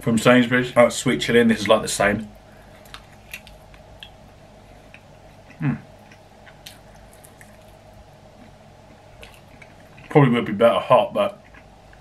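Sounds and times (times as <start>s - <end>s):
person chewing: 2.6s - 10.2s, 11.3s - 12.0s
person humming: 5.5s - 5.9s.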